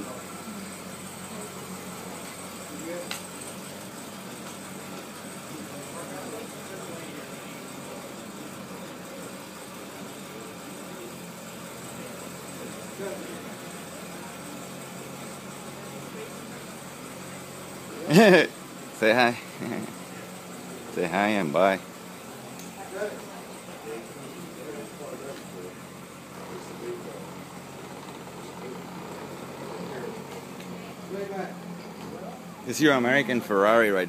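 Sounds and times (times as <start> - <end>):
car engine idling: 0.0 - 34.0.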